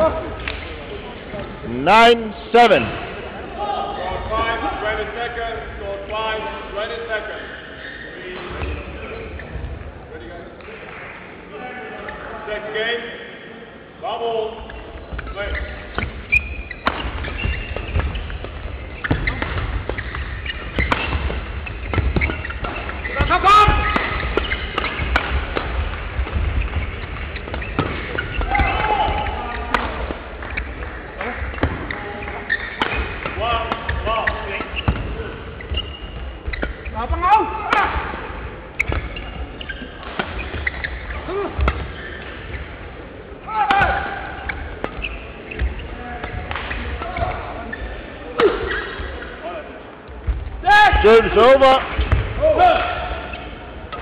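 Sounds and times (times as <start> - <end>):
voices in hall: 0.0 - 54.0
shoes squeaking on court: 6.9 - 9.9, 14.6 - 37.8, 38.5 - 43.1, 43.8 - 49.4, 53.1 - 54.0
racket striking shuttlecock: 23.9 - 26.5.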